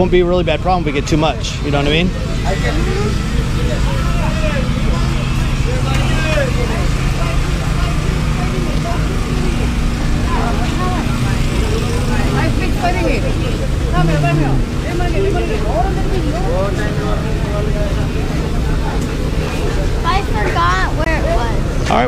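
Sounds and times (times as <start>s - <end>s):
crowd babble: 0.0s - 22.0s
low hum: 0.0s - 22.0s.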